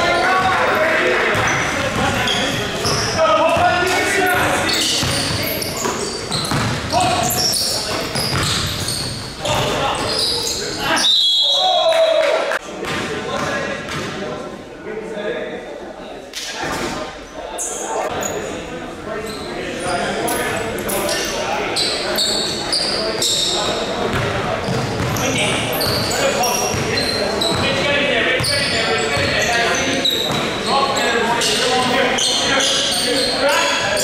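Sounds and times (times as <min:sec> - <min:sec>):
players calling out: 0:00.0 - 0:12.6
sneaker squeaks: 0:01.4 - 0:03.2, 0:04.2 - 0:11.7, 0:17.6 - 0:18.6, 0:19.2 - 0:27.8, 0:28.4 - 0:34.0
basketball bouncing on wooden floor: 0:06.3 - 0:06.8, 0:08.0 - 0:08.9.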